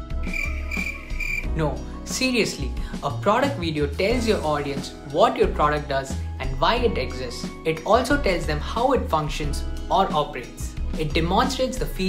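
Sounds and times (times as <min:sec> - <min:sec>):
quiet background music: 0:00.0 - 0:12.0
cricket chirping trill: 0:00.2 - 0:01.5.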